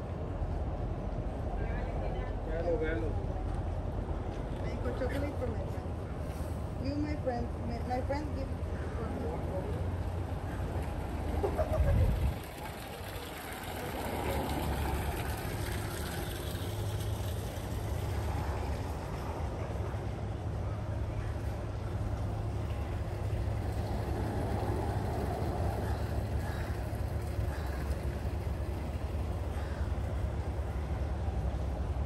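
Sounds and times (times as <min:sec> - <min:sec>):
street rumble: 0:00.0 - 0:32.0.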